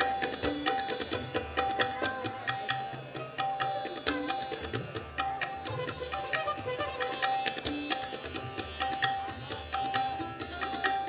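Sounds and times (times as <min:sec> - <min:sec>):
plucked string instrument: 0:00.0 - 0:11.0
tabla drumming: 0:00.0 - 0:11.0.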